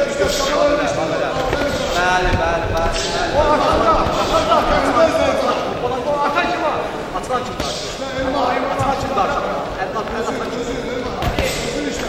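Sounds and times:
voices in a hall: 0.0s - 12.0s
footsteps on ring canvas: 1.1s - 5.4s.

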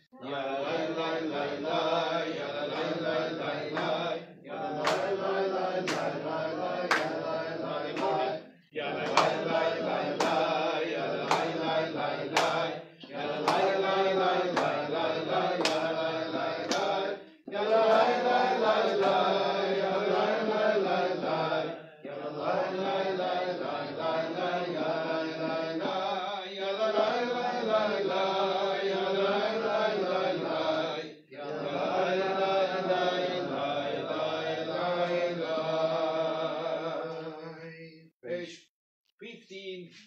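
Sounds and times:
voices chanting a prayer: 0.0s - 38.5s.

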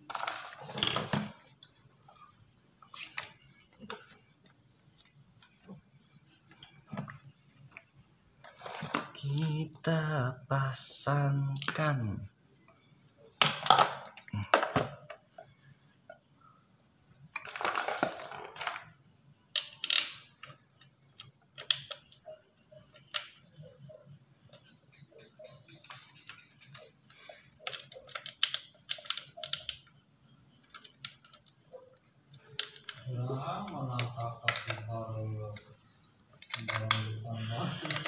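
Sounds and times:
small parts clicking and clinking: 0.0s - 1.8s, 17.4s - 23.5s, 24.5s - 30.0s, 30.6s - 31.6s, 32.3s - 34.9s, 36.3s - 38.0s.

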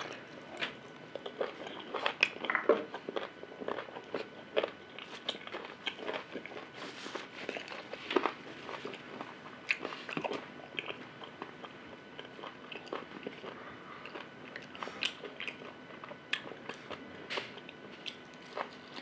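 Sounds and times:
person chewing food: 0.0s - 19.0s.

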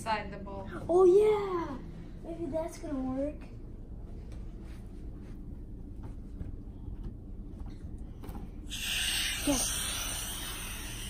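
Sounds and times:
air hissing into balloon: 8.7s - 11.0s.

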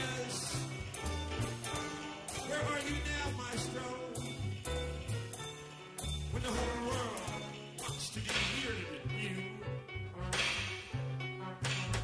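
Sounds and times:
double bass line: 0.0s - 12.0s.

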